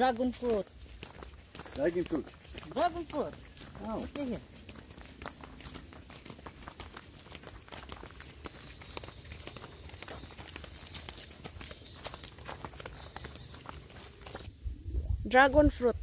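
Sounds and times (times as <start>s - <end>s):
footsteps on dirt path: 0.0s - 14.5s
low microphone rumble: 14.5s - 16.0s.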